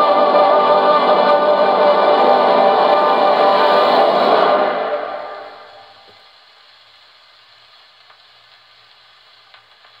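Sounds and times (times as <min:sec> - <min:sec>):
record surface hiss: 0:00.0 - 0:10.0.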